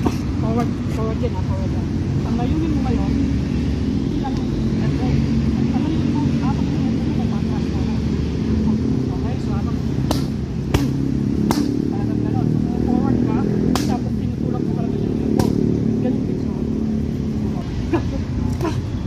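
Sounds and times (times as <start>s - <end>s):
strikes slapping focus mitts: 10.0s - 11.8s.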